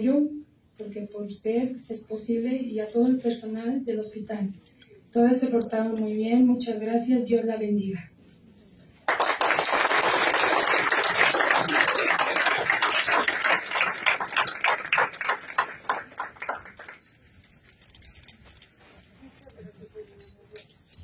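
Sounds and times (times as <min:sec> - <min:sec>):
audience applauding: 0:09.0 - 0:17.0.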